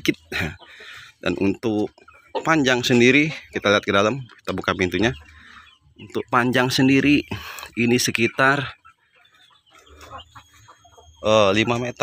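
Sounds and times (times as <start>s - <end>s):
hens clucking: 0.0s - 12.0s.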